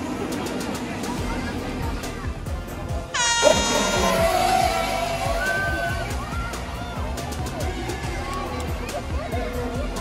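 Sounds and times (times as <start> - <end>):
horn blast: 3.1 - 6.1.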